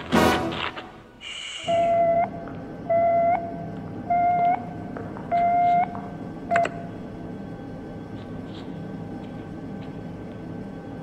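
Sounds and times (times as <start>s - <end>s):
electronic beeps: 1.7s - 4.7s, 5.3s - 5.9s.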